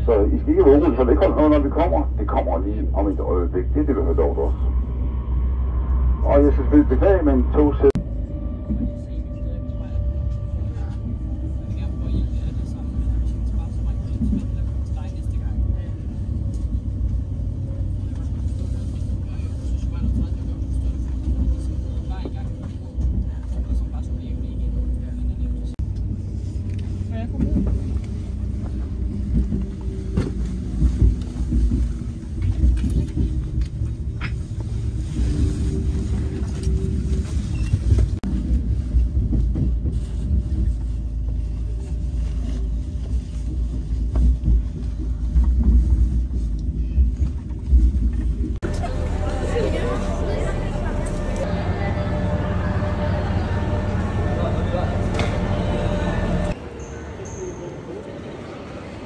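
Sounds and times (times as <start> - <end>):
train rumbling on rails: 0.0 - 59.0.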